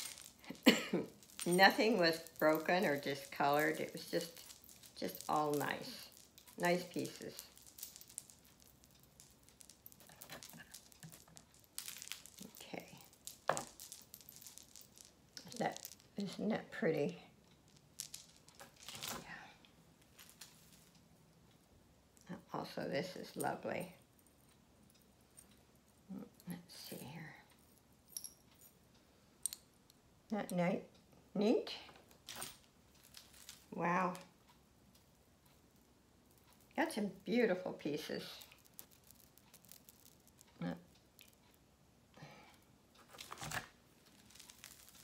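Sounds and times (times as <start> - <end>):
metal jewelry chains clinking: 0.0 - 19.4, 27.6 - 28.8, 32.1 - 34.3, 36.3 - 41.6, 43.0 - 45.0
beaded necklace clicking: 0.0 - 21.6, 32.0 - 41.6, 43.0 - 45.0.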